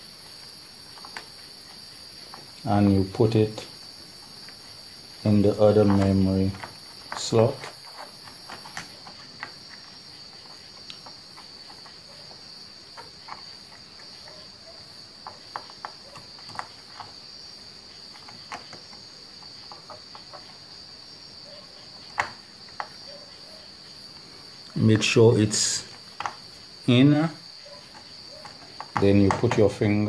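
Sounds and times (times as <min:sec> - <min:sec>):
cricket trill: 0:00.0 - 0:30.0
plastic clicks and taps: 0:22.1 - 0:23.0, 0:26.2 - 0:26.4, 0:27.9 - 0:29.7.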